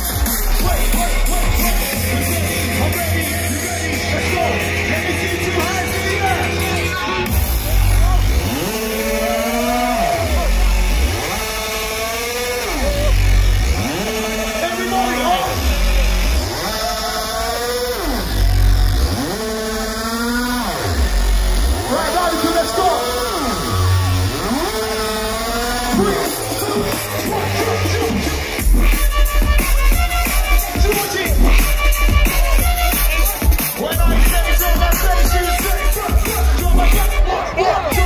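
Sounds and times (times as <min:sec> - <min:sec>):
distorted synth bass growl: 0:00.0 - 0:38.0
heavy low bass hits: 0:07.3 - 0:09.0.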